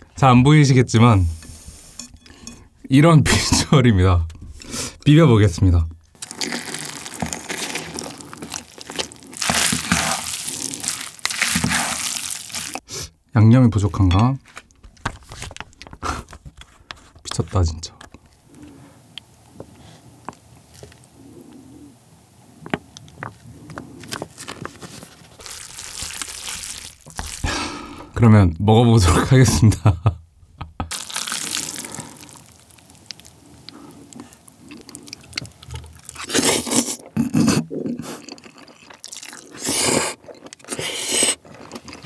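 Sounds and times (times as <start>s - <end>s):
chopsticks stirring sticky noodles: 6.2s - 12.8s
noodles squelching in sauce: 6.2s - 12.9s, 25.4s - 27.9s, 30.9s - 37.0s.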